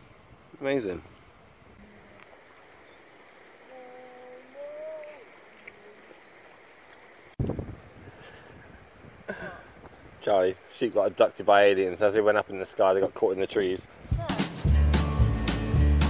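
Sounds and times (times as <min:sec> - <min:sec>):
river running over rocks: 0:01.7 - 0:07.4.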